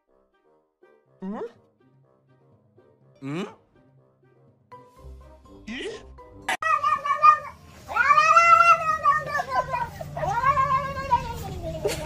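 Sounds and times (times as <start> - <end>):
cat yowling: 6.6 - 11.1.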